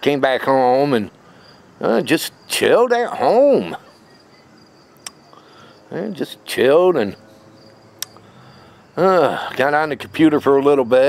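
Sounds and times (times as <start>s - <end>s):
crickets chirping: 0.1s - 11.0s
sharp click: 8.0s - 8.2s.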